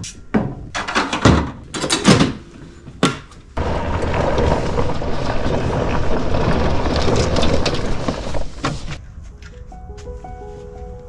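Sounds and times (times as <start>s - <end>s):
utility vehicle engine rumbling: 3.5s - 9.1s.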